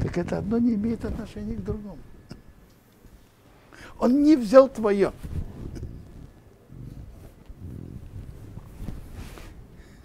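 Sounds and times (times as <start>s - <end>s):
man breathing: 3.6s - 4.0s, 9.3s - 10.0s.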